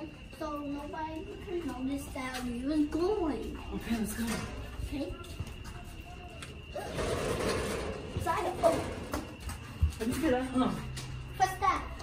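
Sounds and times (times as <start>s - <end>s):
metal mesh gate rattling: 6.9s - 9.1s.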